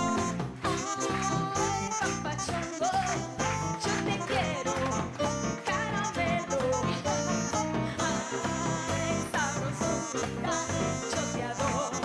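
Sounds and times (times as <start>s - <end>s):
alto saxophone: 0.0s - 12.0s
live merengue band: 0.0s - 12.0s
woman singing: 0.0s - 12.0s.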